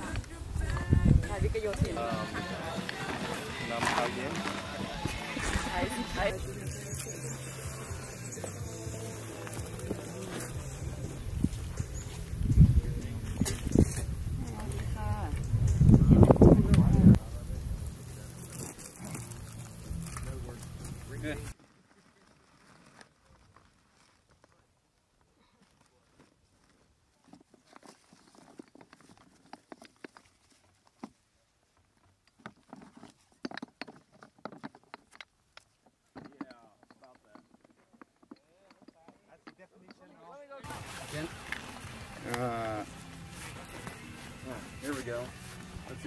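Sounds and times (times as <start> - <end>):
blocks clicking and knocking: 32.3 - 39.6.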